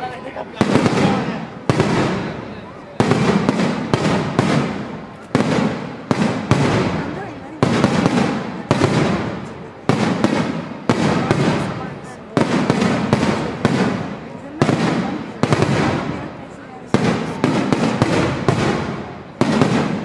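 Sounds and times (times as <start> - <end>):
fireworks bursting with rumbling tail: 0.0 - 20.0.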